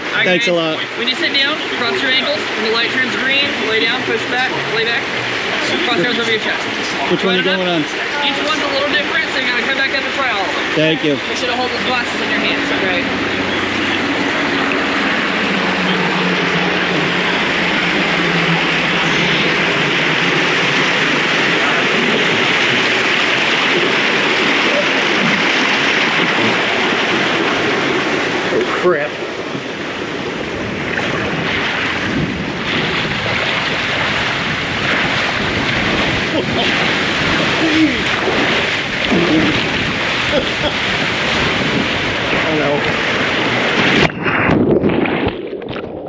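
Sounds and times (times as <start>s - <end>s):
water rushing down slide: 0.0s - 46.0s
water splashing: 0.0s - 46.0s
wind on microphone: 10.6s - 46.0s.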